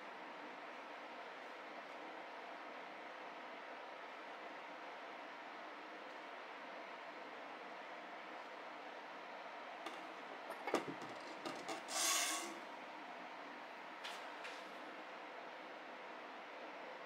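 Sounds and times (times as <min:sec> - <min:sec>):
knife scraping: 0:11.4 - 0:12.6.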